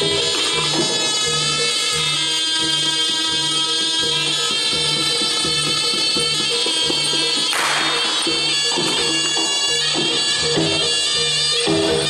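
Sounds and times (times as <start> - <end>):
buzzy double-reed shawm note: 0.0 - 12.0.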